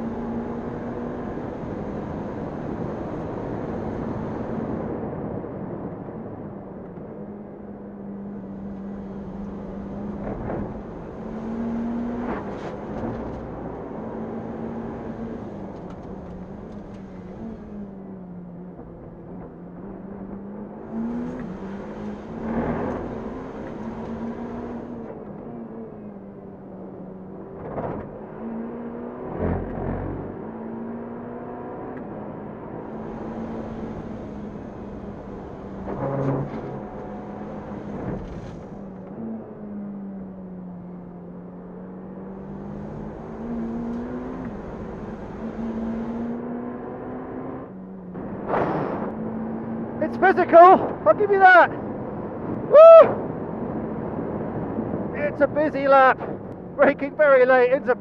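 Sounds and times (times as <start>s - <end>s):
race car engine at full throttle: 0.0s - 58.0s.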